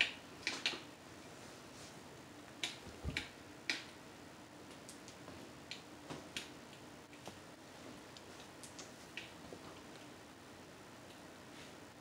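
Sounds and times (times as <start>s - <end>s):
low steady background noise: 0.0s - 12.0s.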